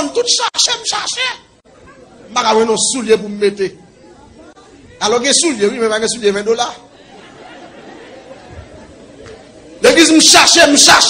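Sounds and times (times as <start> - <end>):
murmur of voices: 0.9 - 11.0.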